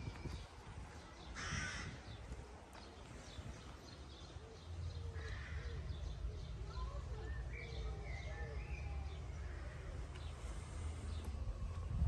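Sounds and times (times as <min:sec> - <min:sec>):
faint bird chirping: 0:00.0 - 0:11.9.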